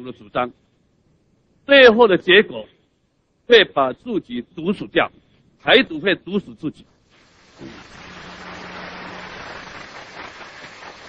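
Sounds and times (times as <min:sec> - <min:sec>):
large audience applauding: 0:07.6 - 0:11.0.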